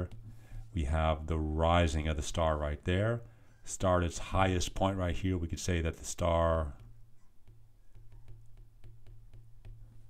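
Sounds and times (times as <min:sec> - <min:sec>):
stylus tapping on glass screen: 0:06.7 - 0:10.0.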